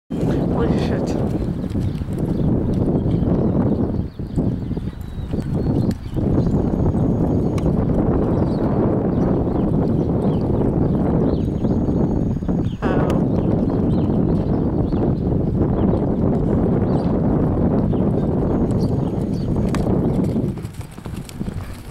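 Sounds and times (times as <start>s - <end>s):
horse hoofbeats on sandy dirt: 0.1s - 21.9s
low rumble on microphone: 0.1s - 21.9s.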